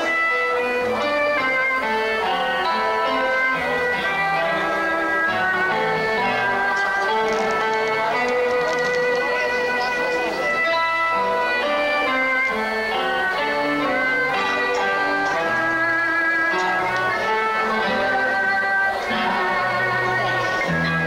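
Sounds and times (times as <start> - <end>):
melody of long held notes: 0.0 - 21.0.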